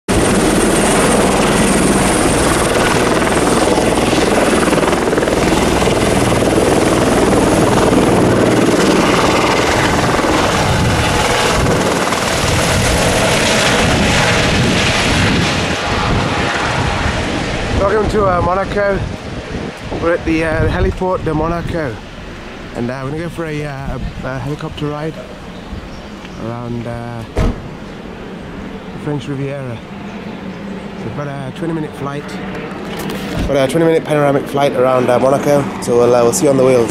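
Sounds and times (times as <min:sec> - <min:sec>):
helicopter turbine whine and rotors: 0:00.1 - 0:36.9.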